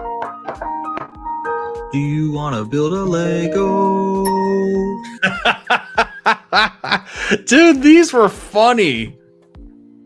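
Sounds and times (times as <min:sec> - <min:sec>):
man laughing: 0:05.0 - 0:07.7.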